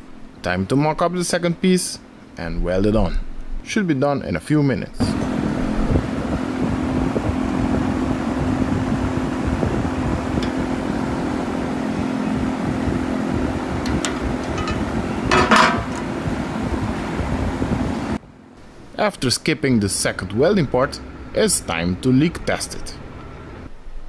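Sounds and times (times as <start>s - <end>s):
mechanical hum with low rumble: 0.0s - 24.0s.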